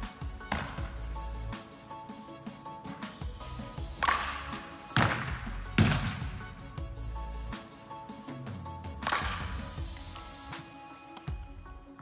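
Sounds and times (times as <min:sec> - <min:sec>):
background music with steady tones: 0:00.0 - 0:12.0
bat hitting ball: 0:00.5 - 0:01.1, 0:03.8 - 0:06.5, 0:09.0 - 0:09.7.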